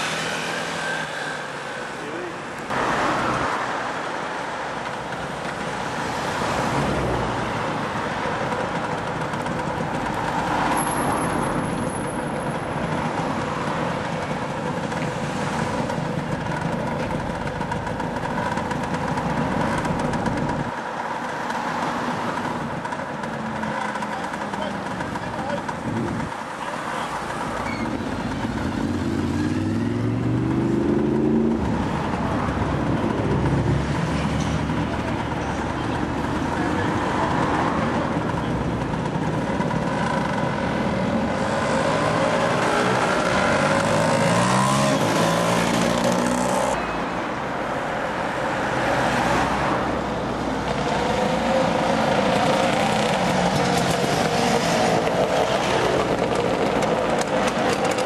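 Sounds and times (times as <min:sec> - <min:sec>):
wind and road noise: 0:00.0 - 0:58.0
motor scooter engine accelerating: 0:38.2 - 0:46.8.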